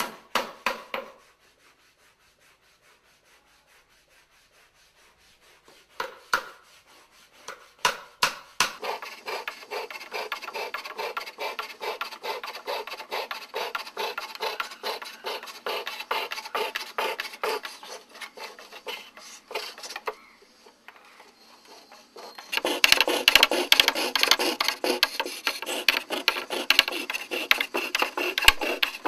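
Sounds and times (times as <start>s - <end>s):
hand tool scraping wood: 8.6s - 29.0s.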